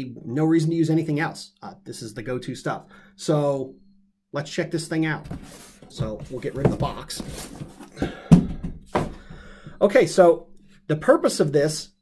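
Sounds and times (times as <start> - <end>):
cardboard box hollow thumps: 5.3 - 9.8.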